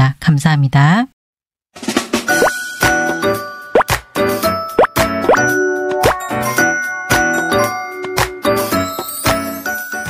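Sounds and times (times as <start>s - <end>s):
rising bloop pop effects: 2.4s - 2.6s, 3.7s - 4.0s, 4.8s - 6.3s
bell-like jingle: 5.4s - 10.0s.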